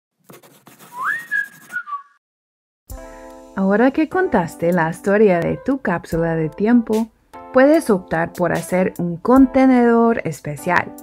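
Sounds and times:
sliding whistle tone: 0:00.8 - 0:02.2.

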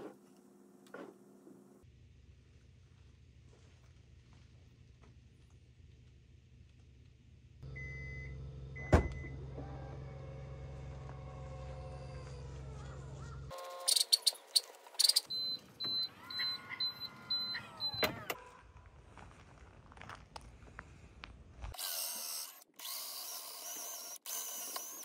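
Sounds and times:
tailgate motor whirring: 0:07.7 - 0:12.6, 0:15.3 - 0:18.4
electronic warning beeps: 0:15.0 - 0:18.4.

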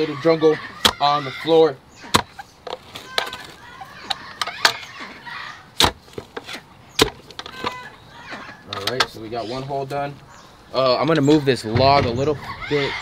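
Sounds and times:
post-hole digger chopping soil: 0:00.8 - 0:01.1, 0:02.0 - 0:04.9, 0:05.8 - 0:07.8
crunching of mulch and dirt: 0:00.8 - 0:10.3.

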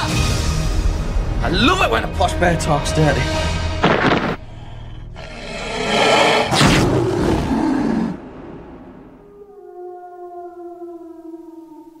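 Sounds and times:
long howl falling in pitch: 0:09.1 - 0:12.0.

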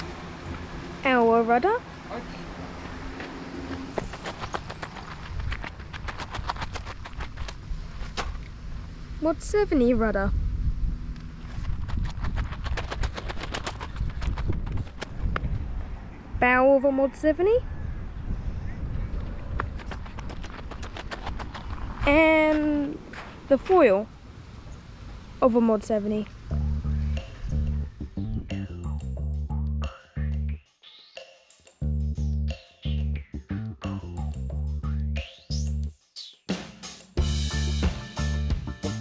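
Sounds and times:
footsteps crunching on gravel: 0:02.8 - 0:08.4, 0:19.2 - 0:23.7
low rumble: 0:07.0 - 0:12.9, 0:21.6 - 0:30.6.

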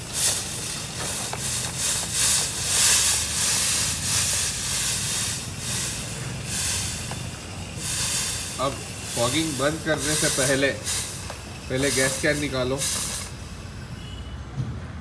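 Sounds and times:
low burner rumble: 0:00.0 - 0:14.0
thermal fogger hissing: 0:00.0 - 0:14.4.

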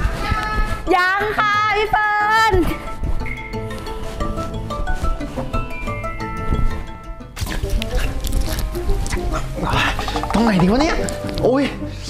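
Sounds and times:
background music with light notes: 0:00.0 - 0:12.0.

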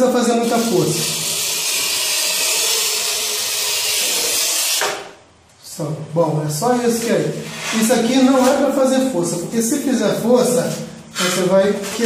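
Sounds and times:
tile cutter scoring tile: 0:00.5 - 0:05.1.

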